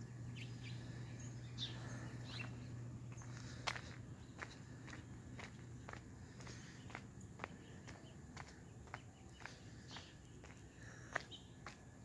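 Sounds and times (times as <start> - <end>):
faint footsteps outdoors: 0.0 - 12.0
low steady hum: 0.0 - 12.0.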